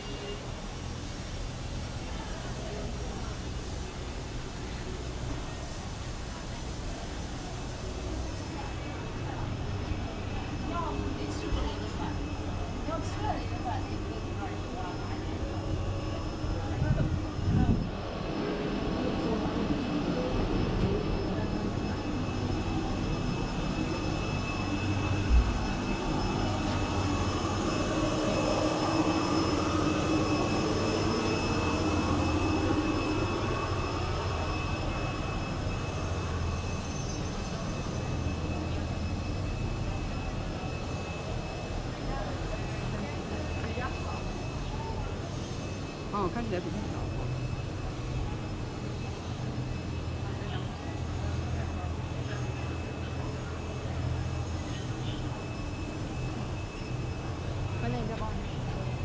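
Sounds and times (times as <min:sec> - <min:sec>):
faint voices: 0:00.0 - 0:59.0
outdoor rumble and hiss: 0:00.0 - 0:59.0.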